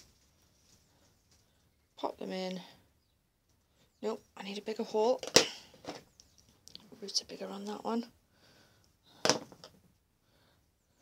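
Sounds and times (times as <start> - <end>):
dibber rustling in potting compost: 0.0 - 2.6.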